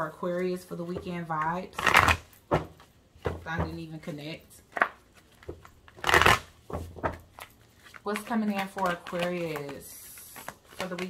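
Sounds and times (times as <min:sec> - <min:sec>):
cards riffling: 0:04.8 - 0:11.0.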